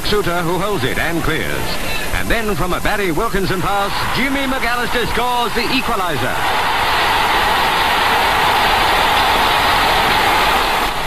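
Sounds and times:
football crowd cheering: 0.0 - 11.0.

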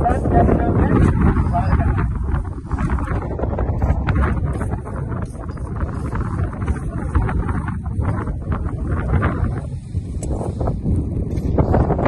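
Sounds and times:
background voices: 0.0 - 9.9
wind buffeting microphone: 0.0 - 12.0.

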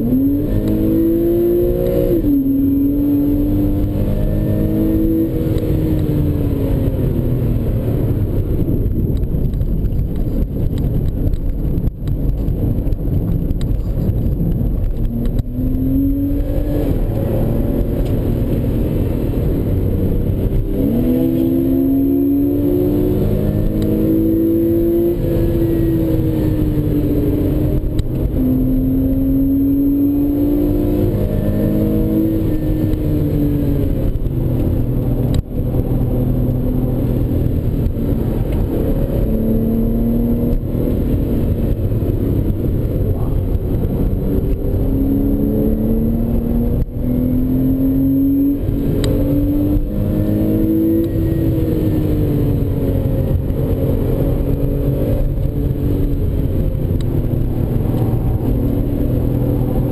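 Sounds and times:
car engine accelerating: 0.0 - 59.9
road and tyre rumble: 0.0 - 59.9.

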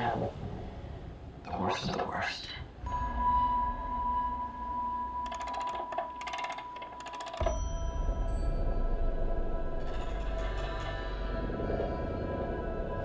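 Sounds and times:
low rumbling drone: 2.8 - 5.3, 7.4 - 13.0.

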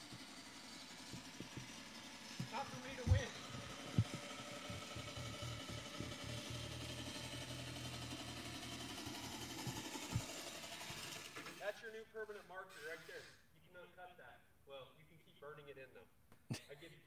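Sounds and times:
reel mower whirring: 0.0 - 11.8
low thumps: 2.4 - 7.2.

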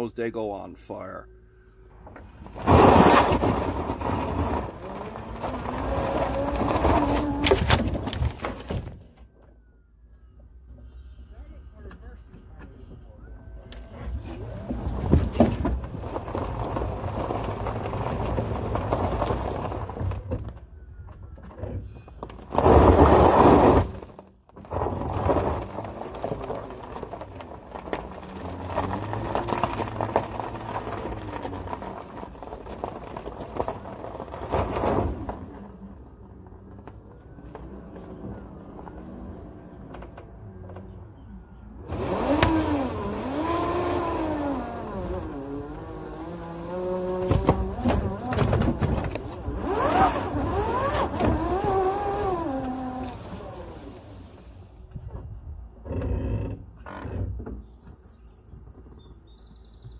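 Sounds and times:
electric motor whining: 41.8 - 48.5.

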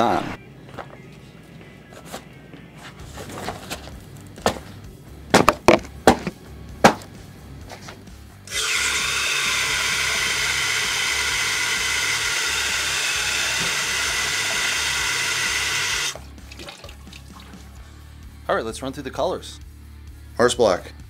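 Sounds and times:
tap water running into plastic jar: 13.4 - 17.7.

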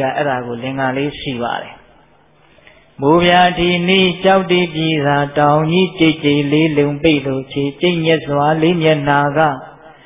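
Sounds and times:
person chanting: 0.0 - 1.8, 3.0 - 10.0.

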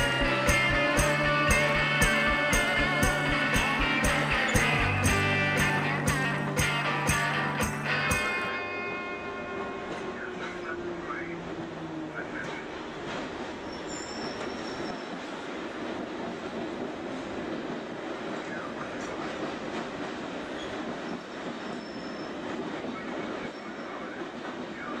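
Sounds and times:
train rumbling in tunnel: 0.0 - 25.0
high wheel squeals: 13.6 - 15.2, 20.5 - 22.5.

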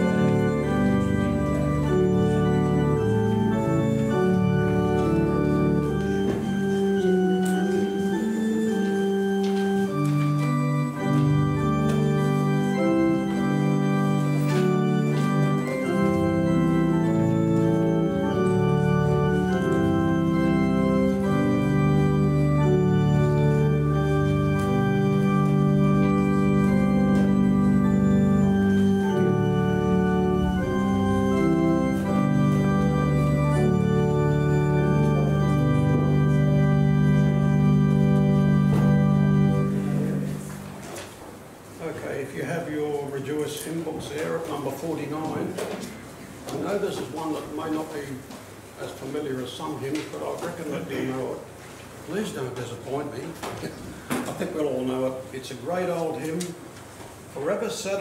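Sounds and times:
organ playing slow chords: 0.0 - 58.0.

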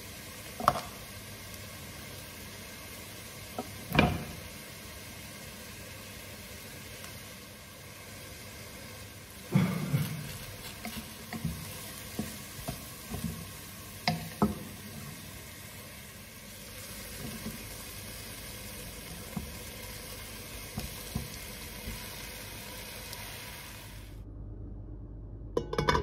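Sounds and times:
onions sizzling in oil: 0.0 - 24.2.

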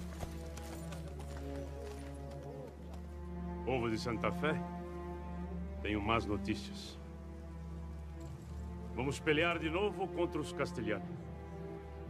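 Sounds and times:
horse hooves clopping: 0.0 - 3.3.

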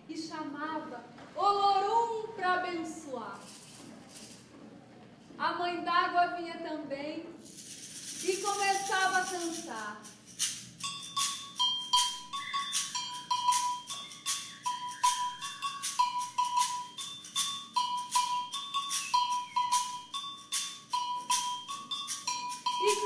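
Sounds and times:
shakers rattling: 3.3 - 4.6, 7.4 - 23.0
high two-note whistle: 11.9 - 23.0.

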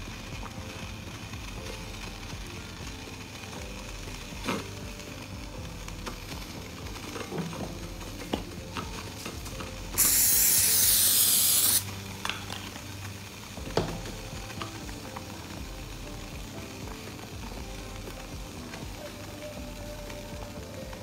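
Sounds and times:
aerosol spray hiss: 9.9 - 12.0.

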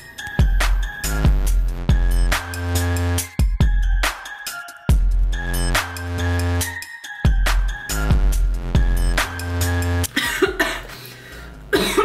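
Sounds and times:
woman coughing: 10.1 - 11.1, 11.7 - 12.0.

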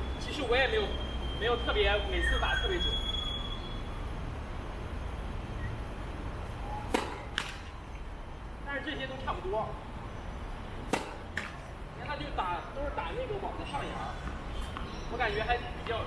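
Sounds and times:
tennis racket hitting ball: 6.9 - 7.7, 10.9 - 11.7.

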